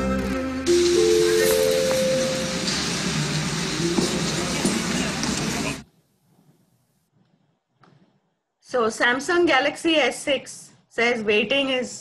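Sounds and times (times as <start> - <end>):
held music note: 0.5 - 3.3
noisy rushing ambience: 0.7 - 5.8.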